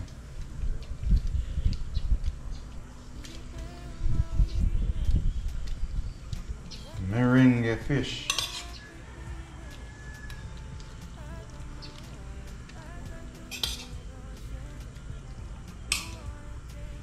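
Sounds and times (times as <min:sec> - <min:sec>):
low steady hum: 0:00.0 - 0:17.0
metal pan and utensil clinking: 0:08.2 - 0:08.8, 0:13.5 - 0:14.0, 0:15.9 - 0:16.2.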